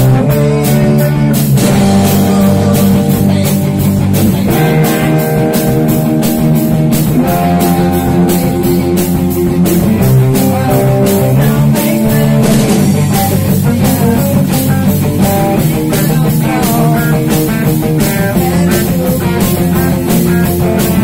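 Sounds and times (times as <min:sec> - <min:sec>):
drum kit beat: 0:00.0 - 0:21.0
rock band playing: 0:00.0 - 0:21.0.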